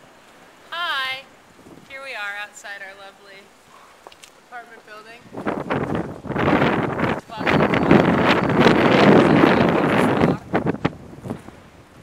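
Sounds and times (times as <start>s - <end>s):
wind buffeting microphone: 1.0s - 3.1s, 4.5s - 12.0s
low rustle: 3.5s - 12.0s.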